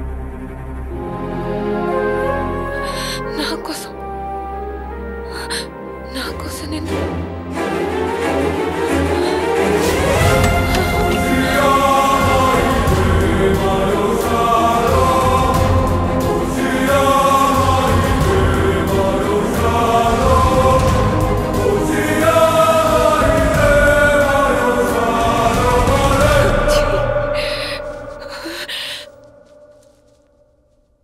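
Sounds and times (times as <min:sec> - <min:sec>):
choir singing held notes: 0:08.8 - 0:29.0.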